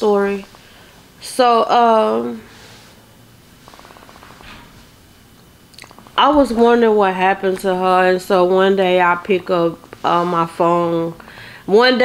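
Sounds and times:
soft breath: 11.2s - 11.7s.

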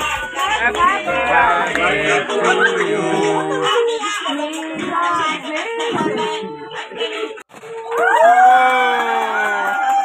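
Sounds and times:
music: 0.0s - 7.4s
voices whooping in a cheer: 7.8s - 10.0s.

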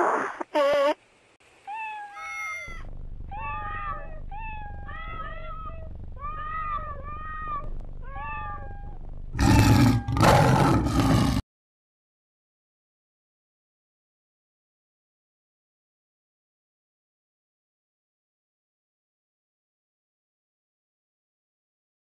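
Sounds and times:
cats meowing: 1.7s - 2.8s, 3.4s - 10.4s
low rumble: 2.7s - 10.1s.

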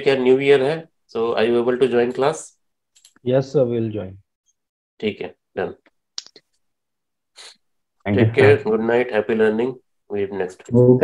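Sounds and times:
person talking: 8.0s - 11.0s.

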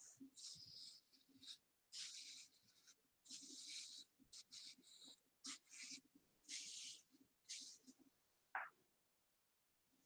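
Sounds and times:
brush swishing through hair: 5.5s - 8.0s.

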